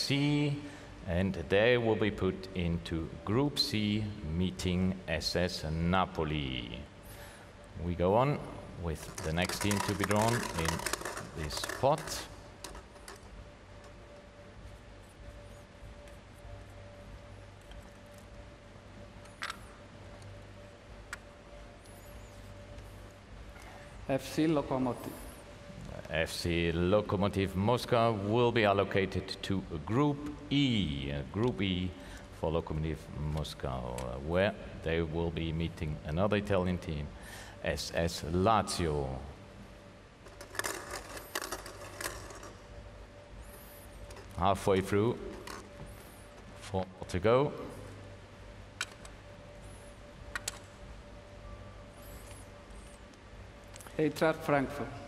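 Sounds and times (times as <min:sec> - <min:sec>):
low music bed: 0:00.0 - 0:55.0
plastic balls clicking: 0:09.0 - 0:14.0, 0:40.3 - 0:42.6.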